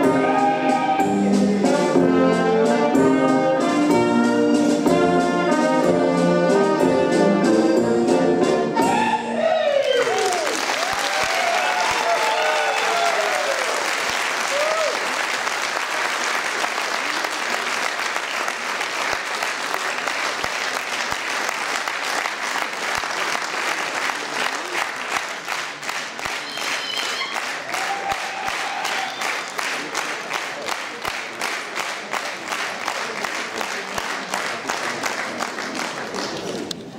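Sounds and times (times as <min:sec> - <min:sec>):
brass band music: 0:00.0 - 0:09.4
voices over clapping: 0:09.7 - 0:36.8
audience applauding: 0:09.7 - 0:36.9.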